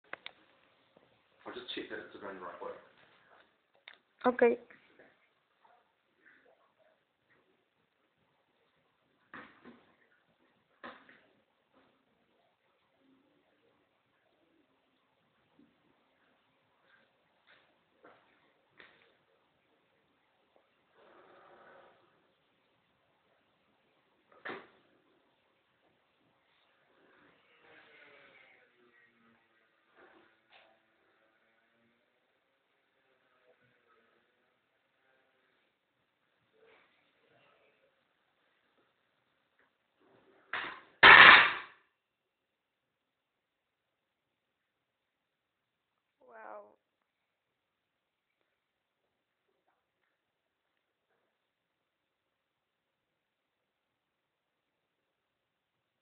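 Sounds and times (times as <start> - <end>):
small cannon blast: 41.0 - 41.8.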